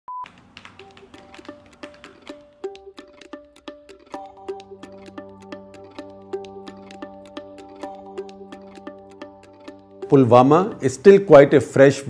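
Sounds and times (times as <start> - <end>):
plucked notes: 0.7 - 11.6.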